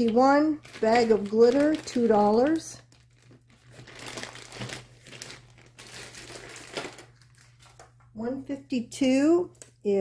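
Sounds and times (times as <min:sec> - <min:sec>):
plastic bag crinkling: 0:00.0 - 0:08.1.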